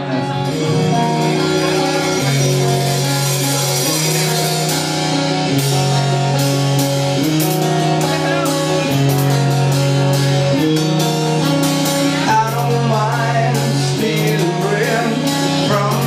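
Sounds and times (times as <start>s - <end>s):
rock band playing: 0.0s - 16.0s.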